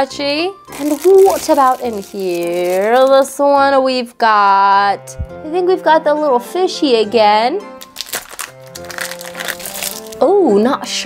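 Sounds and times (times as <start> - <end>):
background music: 0.0 - 11.0
foil bag crinkling: 0.7 - 3.3, 7.8 - 10.2
plastic bag rustling: 0.7 - 3.4, 7.8 - 10.2.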